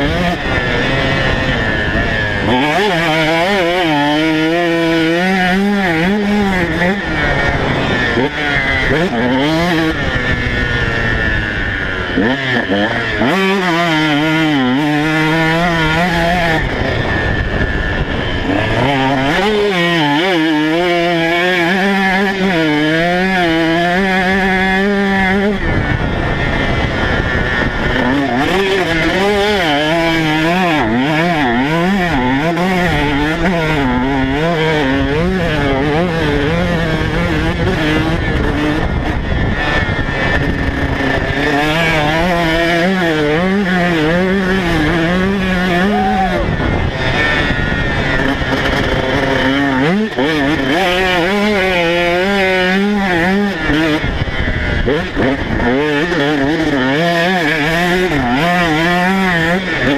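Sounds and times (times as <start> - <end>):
motocross bike engine revving: 0.0 - 59.9.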